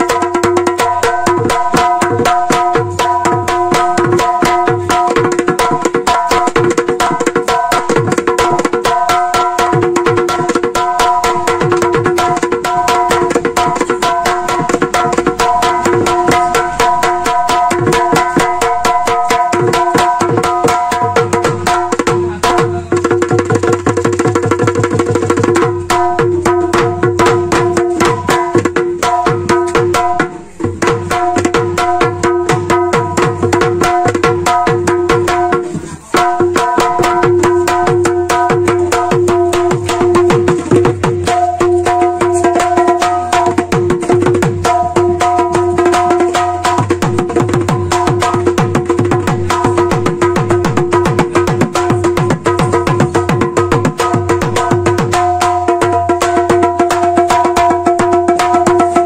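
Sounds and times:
barrel drum played by hand: 0.0s - 59.0s.

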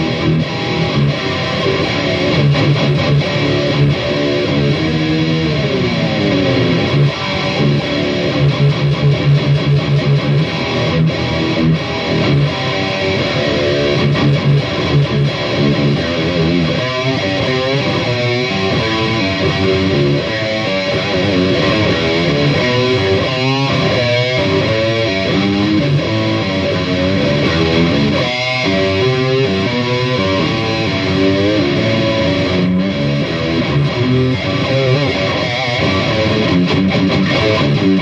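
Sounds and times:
electric guitar playing solo: 0.0s - 38.0s.

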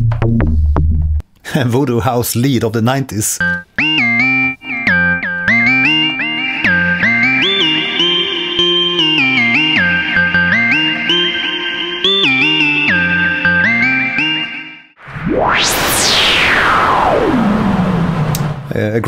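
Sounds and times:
synth lead sliding in pitch: 3.8s - 18.8s.

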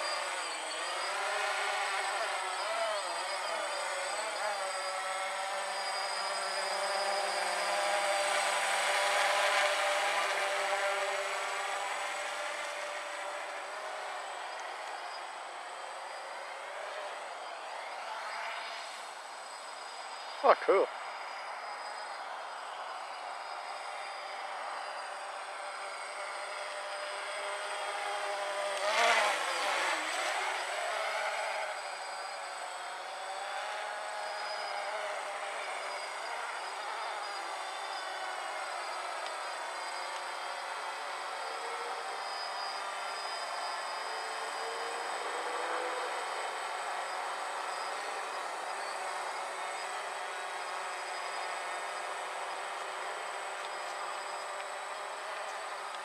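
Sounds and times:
quadcopter buzzing: 0.0s - 56.0s.

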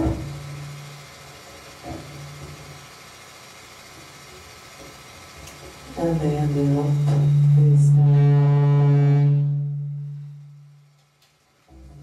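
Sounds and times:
low drone note with overtones: 6.0s - 11.0s.

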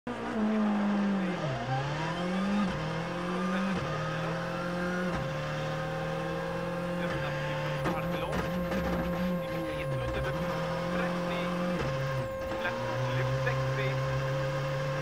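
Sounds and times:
car engine accelerating through gears: 0.1s - 15.0s.

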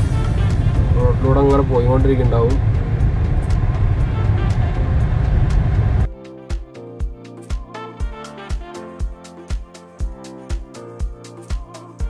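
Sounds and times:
car engine and tyres rumbling: 0.0s - 6.1s
person's voice: 0.9s - 2.6s.

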